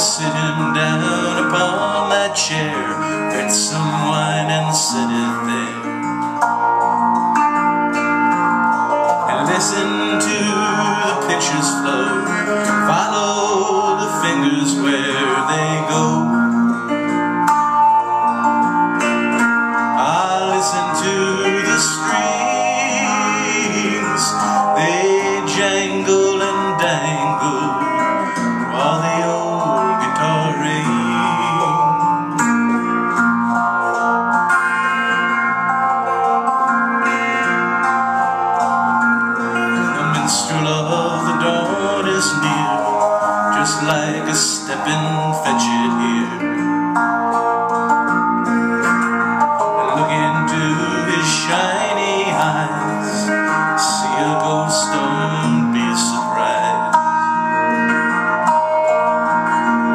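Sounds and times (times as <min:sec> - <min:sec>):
electric guitar melody: 0:00.0 - 0:59.9.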